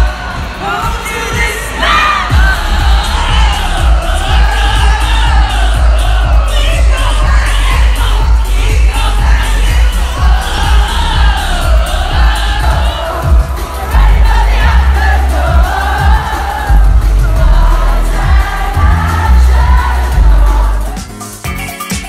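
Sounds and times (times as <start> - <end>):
crowd cheering: 0.0 - 20.6
live pop music with pounding bass: 0.0 - 22.0
person singing: 0.0 - 22.0.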